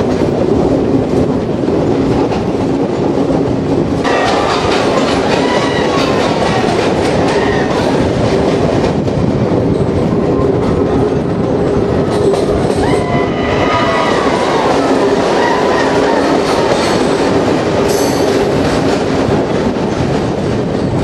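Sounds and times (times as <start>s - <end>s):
train rumbling with wheel clickety-clack: 0.0s - 21.0s.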